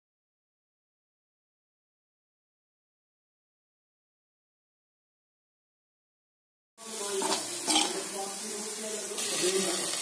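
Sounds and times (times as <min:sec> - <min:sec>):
onions sizzling in oil: 0:06.8 - 0:10.0.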